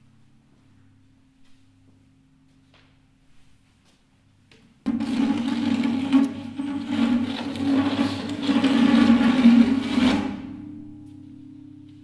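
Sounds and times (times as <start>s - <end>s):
guitar strings scraping: 4.9s - 10.6s.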